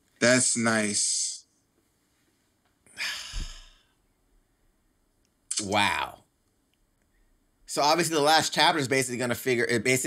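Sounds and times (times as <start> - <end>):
person sighing: 2.9 - 4.0.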